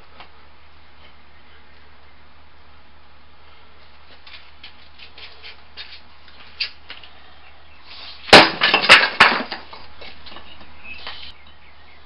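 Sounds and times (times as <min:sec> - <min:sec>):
broken pieces clattering: 0:08.3 - 0:09.8
concrete cracking: 0:08.3 - 0:09.8.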